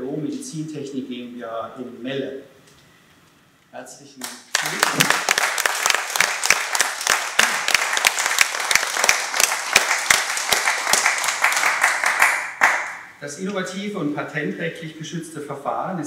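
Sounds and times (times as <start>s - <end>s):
audience applause: 4.5s - 13.0s.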